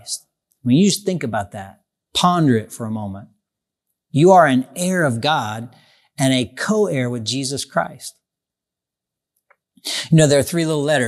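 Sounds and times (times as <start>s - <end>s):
man speaking: 0.0s - 3.3s, 4.1s - 8.2s, 9.9s - 11.0s.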